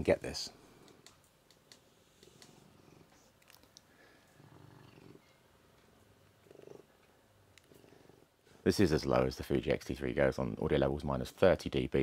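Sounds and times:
recording hiss: 0:00.0 - 0:12.0
cat purring: 0:02.0 - 0:05.4, 0:06.3 - 0:08.3.

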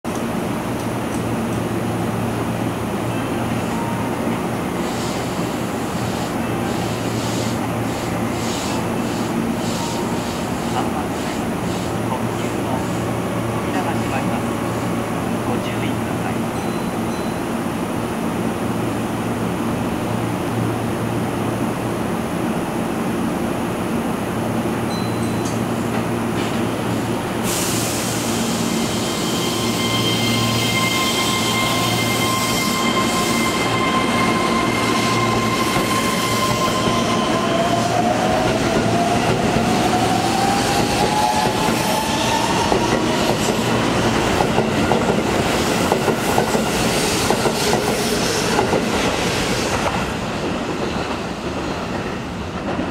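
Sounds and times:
air hiss: 0:27.4 - 0:29.4.

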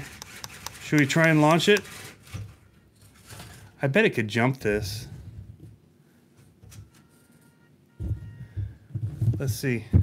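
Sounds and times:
man speaking: 0:00.8 - 0:01.9, 0:09.4 - 0:10.0.

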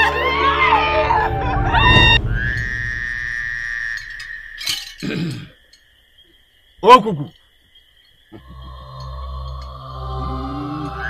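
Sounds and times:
low droning music: 0:00.0 - 0:04.7, 0:08.4 - 0:11.0
pitched cries falling in pitch: 0:00.0 - 0:04.8
held high tone: 0:00.0 - 0:04.9.

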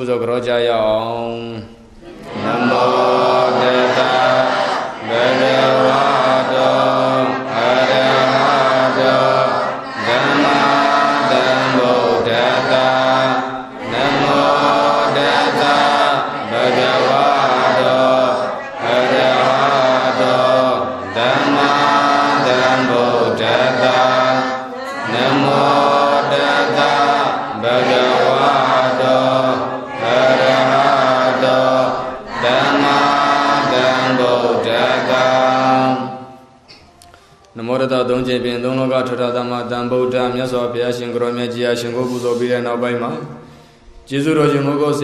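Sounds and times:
devotional chanting: 0:00.0 - 0:45.0.

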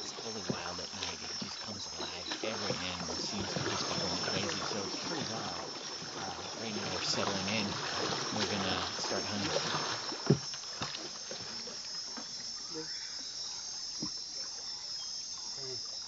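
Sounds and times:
night insects chorus: 0:00.0 - 0:16.0.

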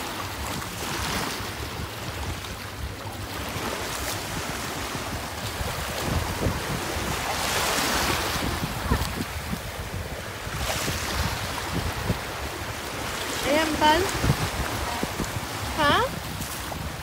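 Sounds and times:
ocean surf washing: 0:00.0 - 0:17.0
wind rumbling on microphone: 0:00.0 - 0:17.0.

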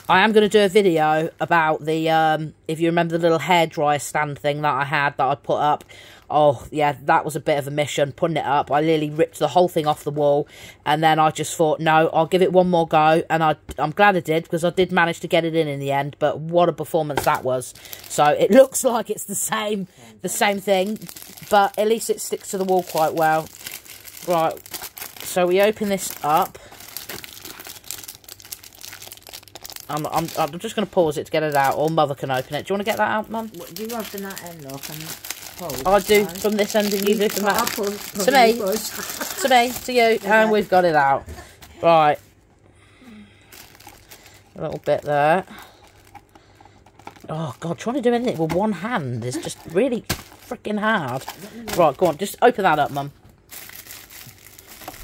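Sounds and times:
plastic packaging crinkling: 0:00.0 - 0:01.8, 0:17.2 - 0:18.9, 0:20.3 - 0:42.5, 0:43.5 - 0:55.0
person speaking: 0:00.0 - 0:23.6, 0:24.2 - 0:24.6, 0:25.2 - 0:26.7, 0:29.8 - 0:42.3, 0:44.5 - 0:45.8, 0:47.2 - 0:53.2.

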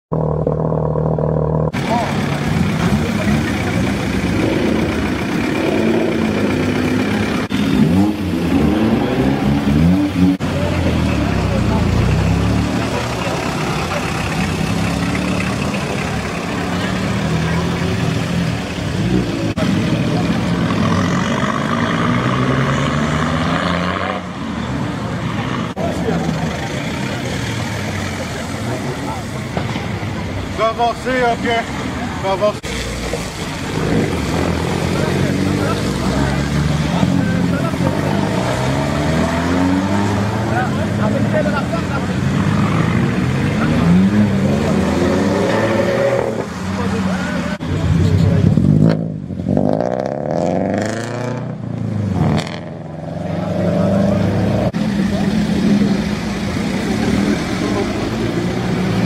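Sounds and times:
car engines revving: 0:00.1 - 0:59.0.

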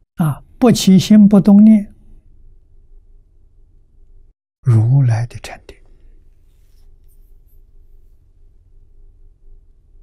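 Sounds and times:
soft rustle: 0:06.2 - 0:08.5.

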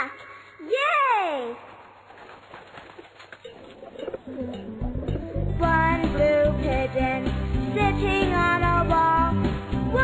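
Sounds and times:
backing music with bass line: 0:04.6 - 0:10.0.

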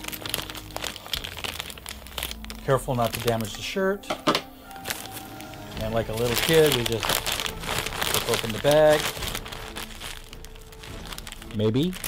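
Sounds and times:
mailing bag crinkling: 0:00.0 - 0:12.0.

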